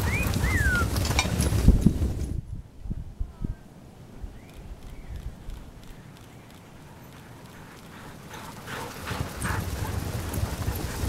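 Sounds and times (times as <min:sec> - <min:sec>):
sled rushing noise: 0:00.0 - 0:02.5, 0:06.8 - 0:11.0
dogs' footfalls on snow: 0:06.5 - 0:11.0
dogs breathing: 0:06.8 - 0:11.0.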